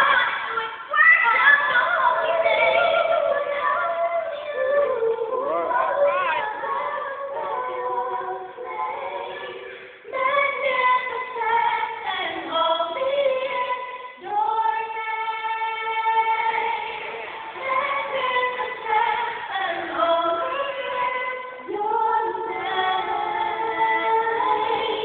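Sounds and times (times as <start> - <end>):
vocal group singing in harmony: 0.0 - 25.0.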